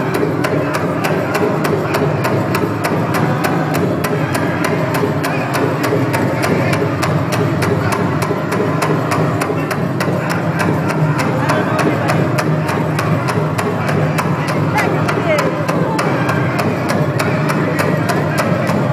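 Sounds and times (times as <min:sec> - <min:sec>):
drum beaten fast: 0:00.0 - 0:18.9.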